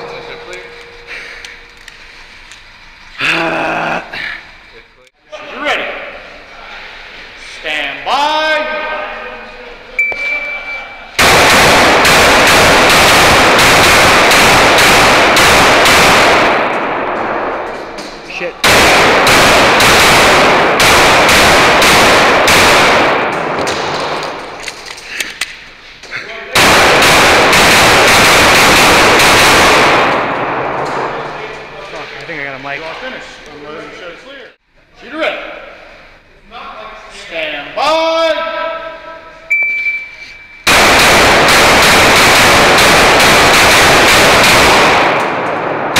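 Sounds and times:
shot timer beep: 10.0 - 11.0, 39.5 - 40.6
pistol firing rapid shots: 11.2 - 17.5, 18.6 - 24.2, 26.6 - 30.8, 40.7 - 45.9
gunshot echoes off concrete: 40.7 - 45.9.

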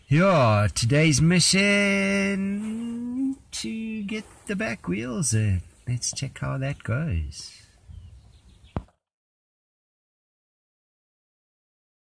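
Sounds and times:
faint handling noise: 2.6 - 4.9.

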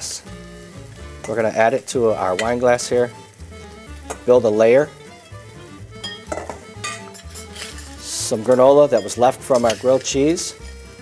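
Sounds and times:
spoon scraping metal bowl: 6.5 - 10.9.

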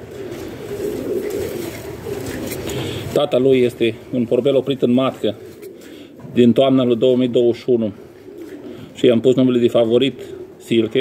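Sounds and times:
pigeon cooing: 0.0 - 11.0.

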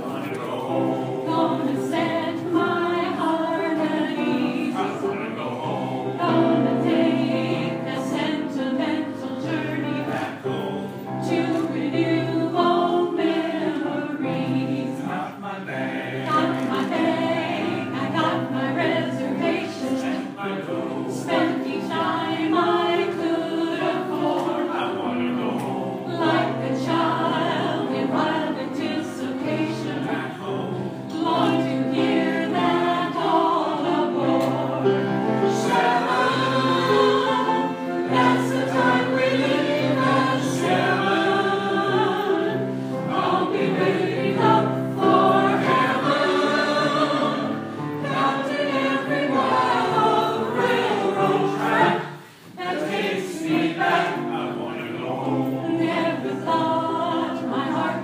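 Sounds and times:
choir singing: 0.0 - 58.0.

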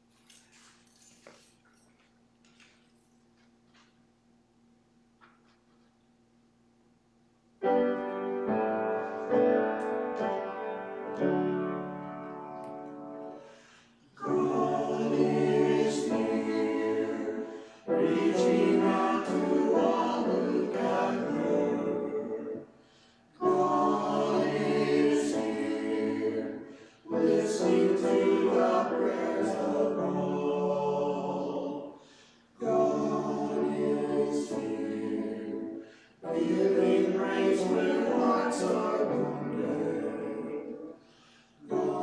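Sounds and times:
piano chord: 7.6 - 13.6
church choir singing: 7.6 - 42.0.

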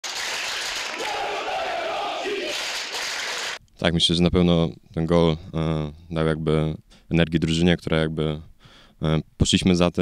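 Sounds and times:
crowd cheering and shouting: 0.8 - 3.6.

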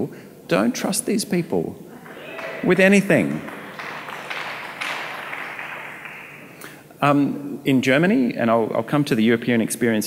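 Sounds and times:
audience applauding: 1.9 - 6.8.

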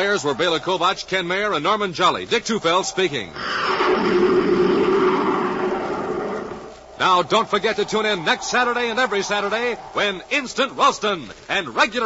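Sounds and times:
sustained roar: 3.3 - 10.4.

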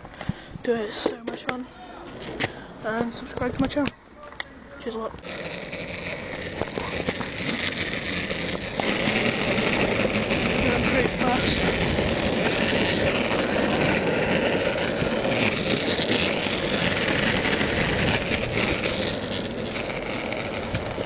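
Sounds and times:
skate wheels rolling on street: 0.0 - 21.0.

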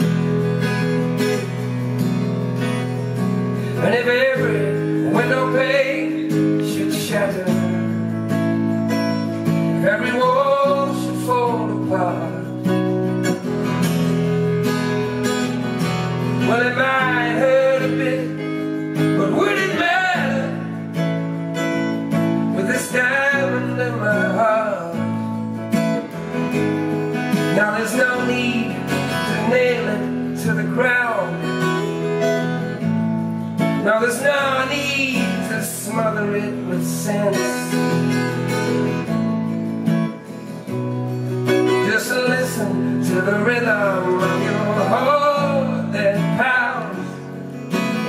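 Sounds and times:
acoustic guitar strumming: 0.0 - 48.0
man singing: 3.2 - 13.8, 15.4 - 32.9, 33.6 - 38.8, 41.4 - 48.0.

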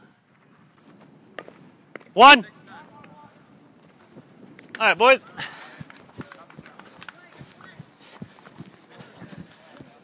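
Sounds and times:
feet scuffing on dirt: 5.5 - 10.0.

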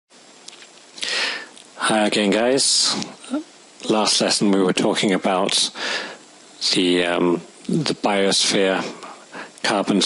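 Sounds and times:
faint hiss: 0.2 - 10.0
person sniffing: 1.0 - 1.5
man speaking: 1.8 - 5.8, 6.6 - 10.0.

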